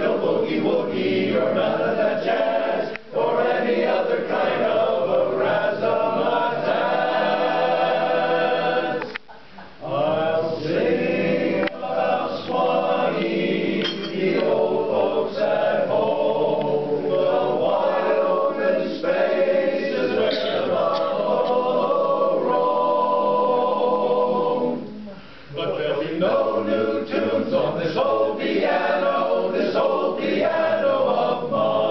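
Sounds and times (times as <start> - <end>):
male chorus singing a cappella: 0.0 - 9.2, 9.8 - 31.9.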